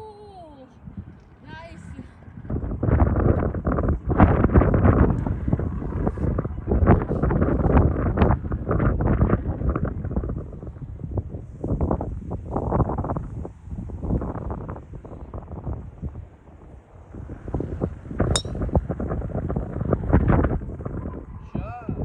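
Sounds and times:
wind buffeting microphone: 0:00.0 - 0:22.0
golf club striking ball: 0:18.3 - 0:18.6.

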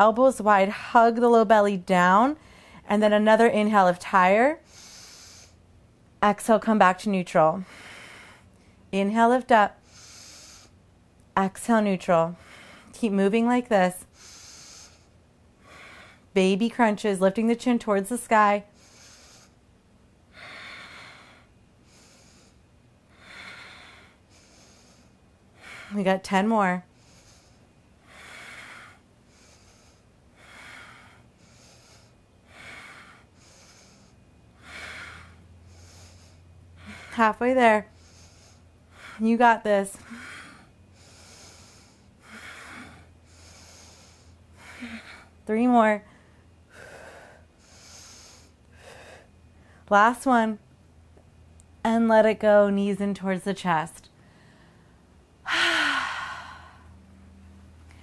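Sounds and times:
woman breathing out hard: 0:55.4 - 0:56.9
woman sighing: 0:55.4 - 0:56.9.

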